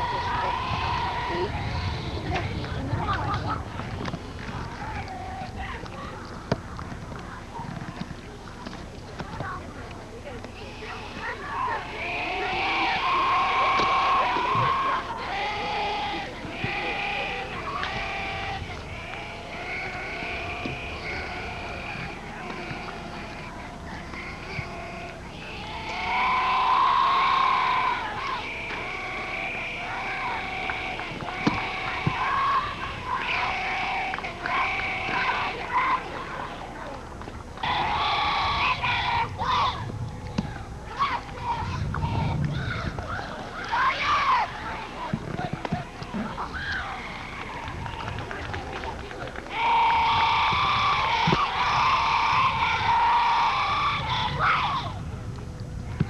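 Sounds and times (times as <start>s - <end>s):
young voices chanting a cheer: 0.0s - 6.5s, 10.4s - 55.1s.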